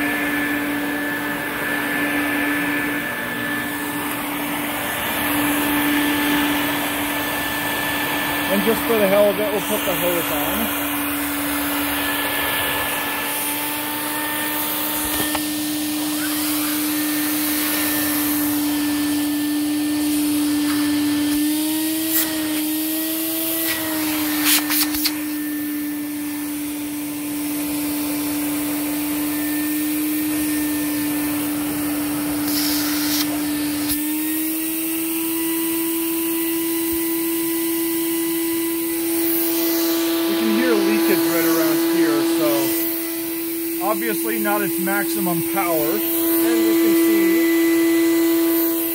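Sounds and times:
vacuum cleaner motor hum: 0.0 - 48.9.

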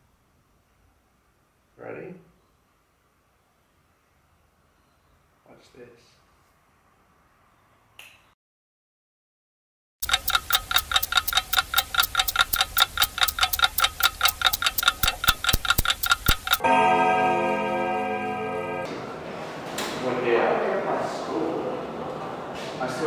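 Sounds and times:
fast clock ticking: 10.0 - 16.6
ringing tone: 10.6 - 18.9.

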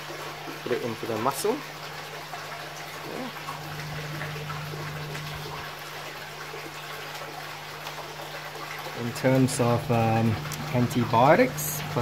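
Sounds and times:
water trickling in a tub: 0.0 - 12.0.

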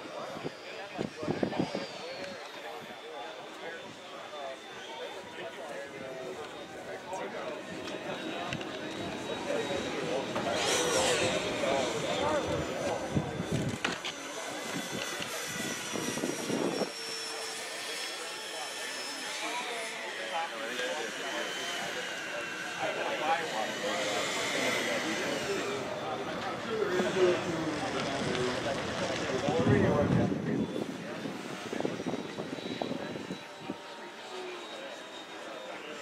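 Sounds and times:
electric ducted fan whining: 0.0 - 36.0.

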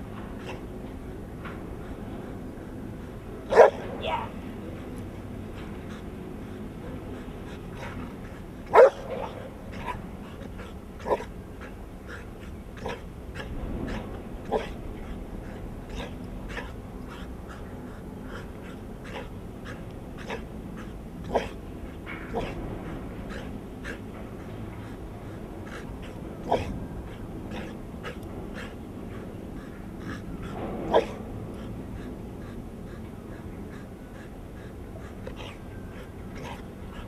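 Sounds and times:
dog barking: 3.5 - 4.2, 8.7 - 10.0, 11.0 - 11.3, 13.9 - 14.8, 21.3 - 21.6, 26.4 - 26.7, 30.9 - 31.2.

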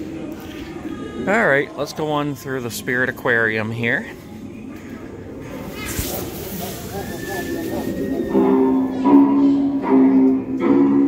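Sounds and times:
burst of hissing: 5.7 - 8.2.

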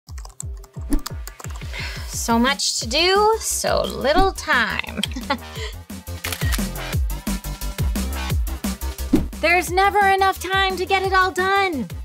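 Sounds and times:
rapid typing on laptop keyboard: 0.1 - 1.7
background music with low beat: 0.1 - 12.0.

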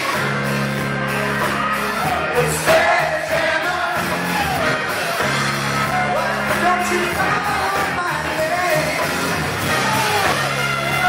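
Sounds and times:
live rock band playing: 0.0 - 11.0
person singing: 5.8 - 11.0.

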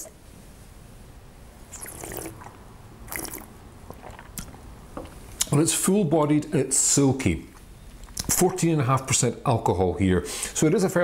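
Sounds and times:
slurping and mouth sounds: 1.7 - 5.5.

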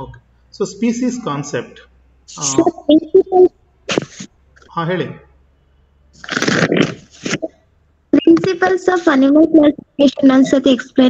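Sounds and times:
rustling crackling noise: 6.2 - 7.6.

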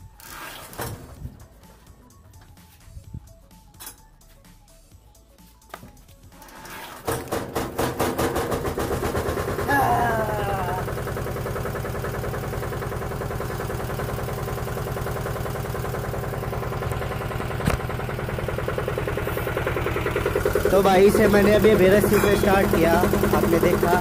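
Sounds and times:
tractor engine idling: 6.1 - 24.0.

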